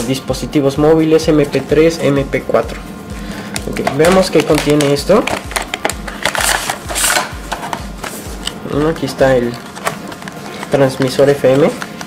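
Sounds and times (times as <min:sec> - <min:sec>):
low pulsing hum: 0:00.0 - 0:10.6
plastic packaging crinkling: 0:03.5 - 0:12.0.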